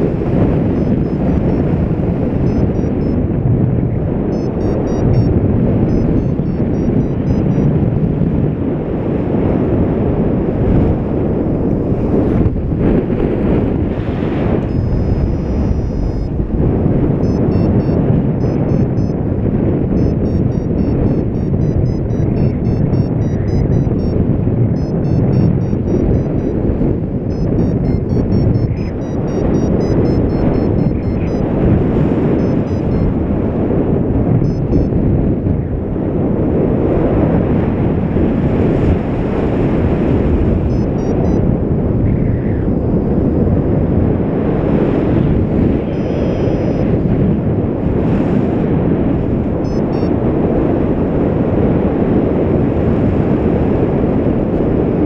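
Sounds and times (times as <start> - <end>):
variometer high beeps: 0.0 - 3.2, 4.3 - 7.8, 14.6 - 19.3, 19.9 - 31.6, 32.3 - 33.2, 34.4 - 35.0, 40.6 - 41.5, 45.7 - 47.0, 49.6 - 50.2
variometer steady tone: 0.0 - 3.4, 4.2 - 8.1, 14.3 - 33.2, 34.4 - 35.0, 40.2 - 44.0, 45.5 - 47.0, 49.6 - 50.2
wind rushing over microphone: 0.0 - 55.0.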